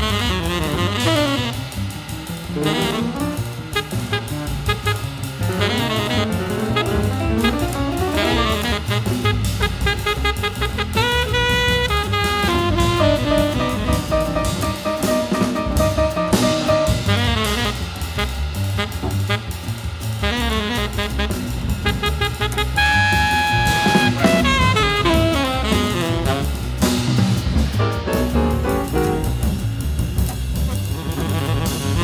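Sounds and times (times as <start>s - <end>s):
bass: 0.0s - 32.0s
drum kit: 0.0s - 32.0s
saxophone playing jazz: 0.0s - 32.0s.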